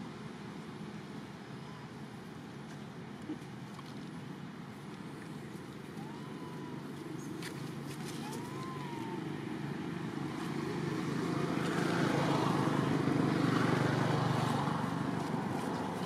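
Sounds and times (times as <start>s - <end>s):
vehicle passing by: 6.0s - 16.0s
call rising and falling in pitch: 8.2s - 9.3s.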